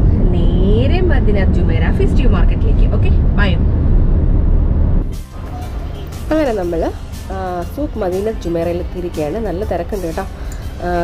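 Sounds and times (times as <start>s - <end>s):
road and engine rumble in car: 0.0s - 11.0s
woman's voice: 0.2s - 3.6s, 6.3s - 11.0s.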